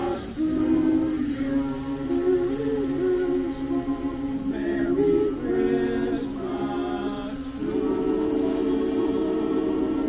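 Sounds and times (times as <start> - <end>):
men's chorus singing in harmony: 0.0 - 10.0.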